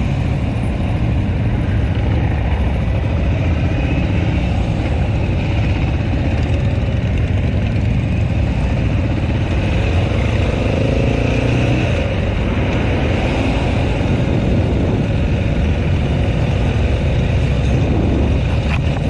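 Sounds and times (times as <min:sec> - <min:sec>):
motorcycle engines running: 0:00.0 - 0:19.0
motorcycle engine revving: 0:01.2 - 0:19.0.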